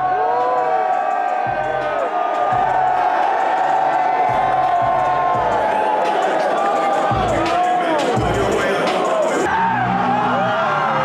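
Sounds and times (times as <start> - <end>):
crowd yelling and singing along: 0.0 - 11.0
hip-hop music through loudspeakers: 0.0 - 11.0.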